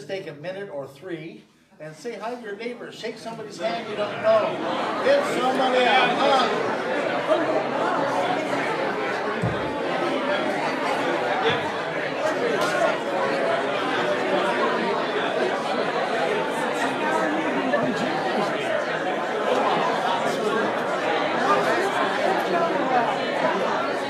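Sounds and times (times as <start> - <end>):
overlapping chatter of people: 0.0 - 24.0.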